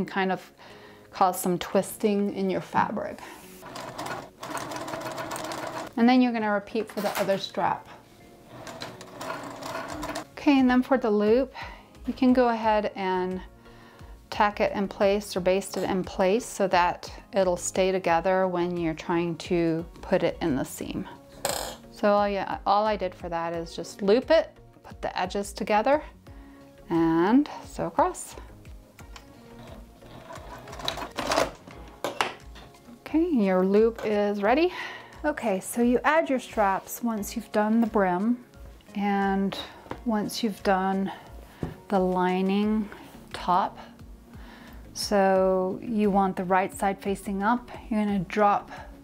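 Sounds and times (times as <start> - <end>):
sewing machine stitching: 3.6 - 6.0, 8.5 - 10.3, 29.6 - 31.6.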